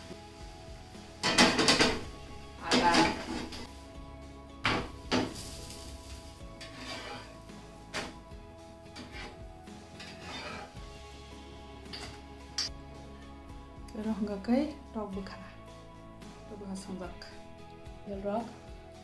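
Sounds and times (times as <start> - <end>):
background music with sustained tones: 0.0 - 19.0.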